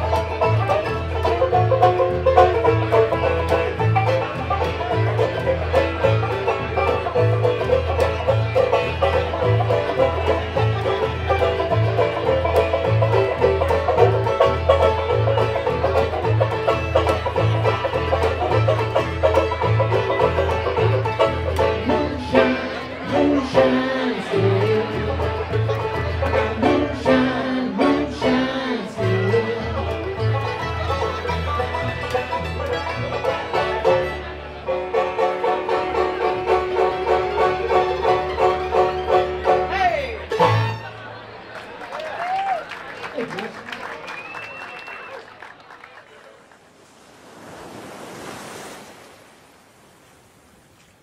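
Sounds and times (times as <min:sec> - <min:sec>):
acoustic guitar: 0:00.0 - 0:41.4
banjo picking: 0:00.0 - 0:41.7
man singing: 0:21.8 - 0:25.2, 0:26.3 - 0:30.0
audience clapping and cheering: 0:41.0 - 0:46.7
short whistle: 0:44.1 - 0:45.2
ocean surf: 0:46.4 - 0:51.0.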